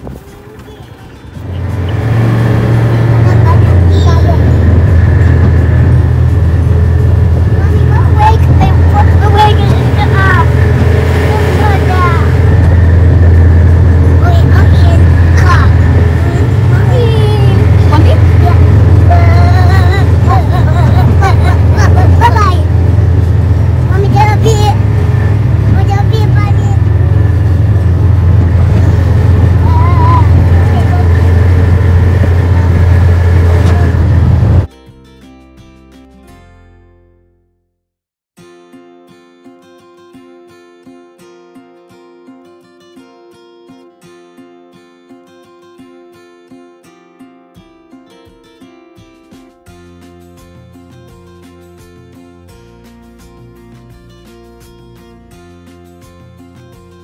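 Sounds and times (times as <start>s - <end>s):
farm vehicle engine running: 0.0s - 34.7s
young children babbling: 18.6s - 22.6s.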